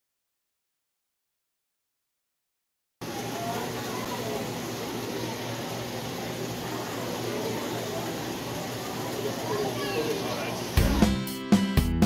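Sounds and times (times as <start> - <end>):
faint indistinct voices: 3.0 - 11.0
running water trickling: 3.0 - 11.2.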